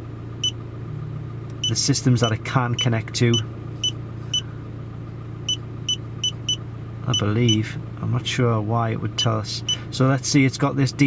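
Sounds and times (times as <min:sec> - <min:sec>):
low hum of car: 0:00.0 - 0:11.0.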